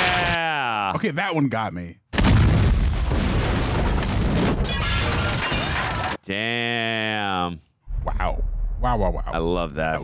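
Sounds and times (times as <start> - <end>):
explosion with rolling rumble: 2.2 - 4.7.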